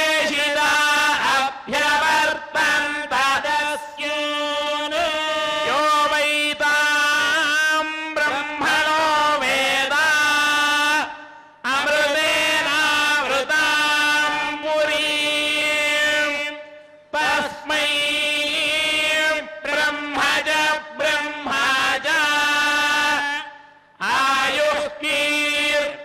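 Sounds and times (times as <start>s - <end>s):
men chanting mantras: 0.0s - 26.0s.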